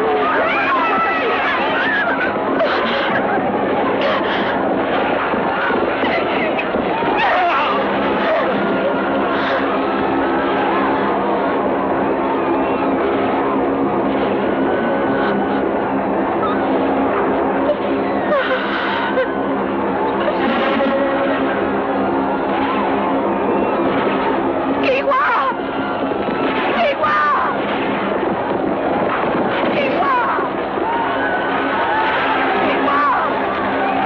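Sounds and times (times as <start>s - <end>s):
battle cries and shouting: 0.0s - 34.0s.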